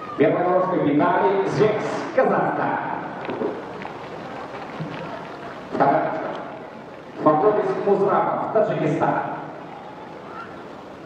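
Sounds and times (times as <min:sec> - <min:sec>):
stadium ambient hiss: 0:00.0 - 0:11.0.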